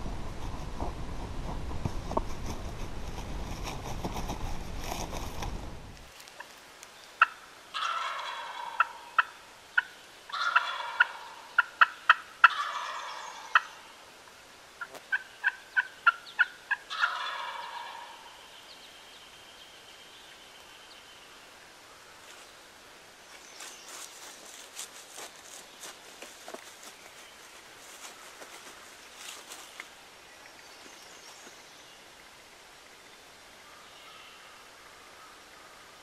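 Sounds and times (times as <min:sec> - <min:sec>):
turkey clucks and yelps: 0:07.2 - 0:13.8, 0:14.8 - 0:18.4
turkey gobbling: 0:07.2 - 0:13.8, 0:14.8 - 0:18.3.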